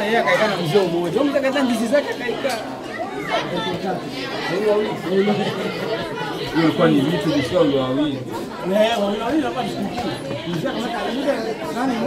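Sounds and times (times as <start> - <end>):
men's voices chatting: 0.0 - 12.0.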